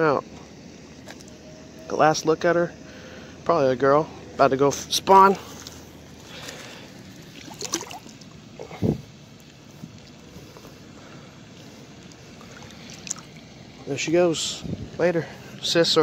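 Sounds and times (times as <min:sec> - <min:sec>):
water sloshing and splashing: 0:00.9 - 0:01.4, 0:05.2 - 0:14.0.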